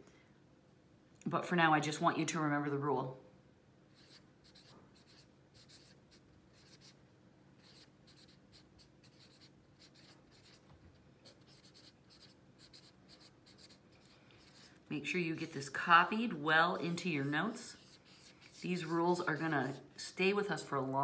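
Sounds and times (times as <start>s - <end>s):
pen scratching on paper: 4.0s - 7.0s, 7.6s - 19.8s.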